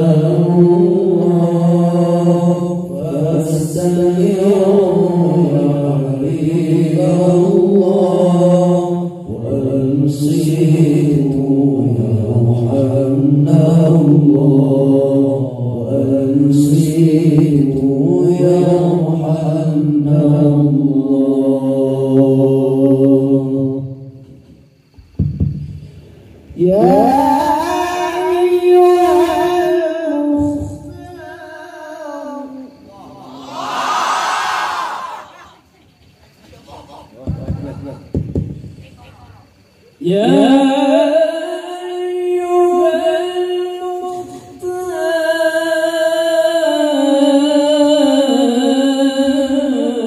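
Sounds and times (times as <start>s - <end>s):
men chanting through microphones: 0.0s - 24.0s, 40.0s - 50.0s.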